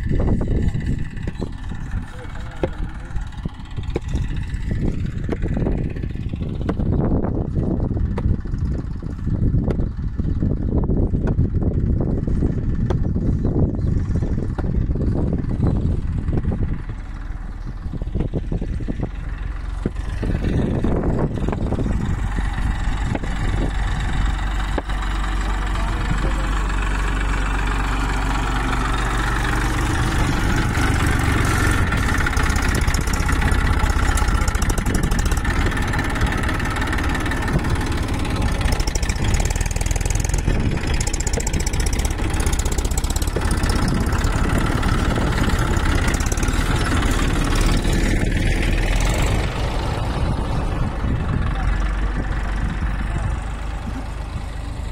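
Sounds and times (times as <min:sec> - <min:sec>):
tractor diesel engine running: 0:00.0 - 0:54.9.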